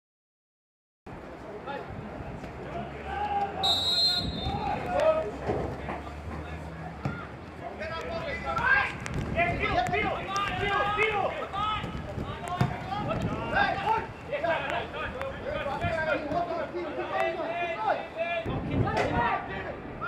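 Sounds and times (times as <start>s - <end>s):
players shouting: 2.6s - 19.6s
referee's whistle: 3.6s - 4.6s
ball being kicked: 11.8s - 13.2s.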